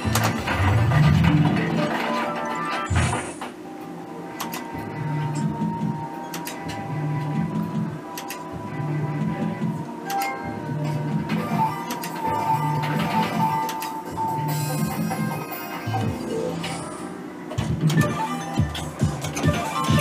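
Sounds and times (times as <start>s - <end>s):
slot machine reels clicking: 0.0s - 3.2s, 4.4s - 5.6s, 6.2s - 6.8s, 10.0s - 17.0s, 17.6s - 20.0s
looping electronic game music: 0.0s - 20.0s.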